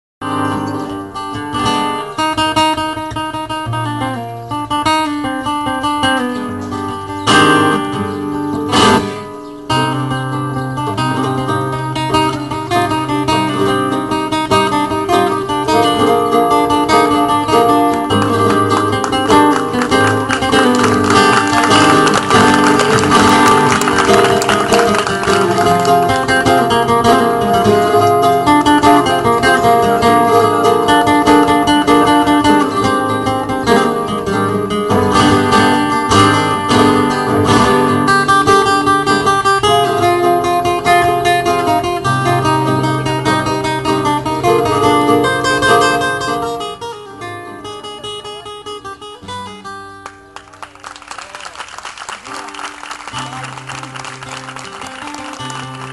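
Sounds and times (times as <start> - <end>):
flamenco guitar playing: 0.2 - 55.9.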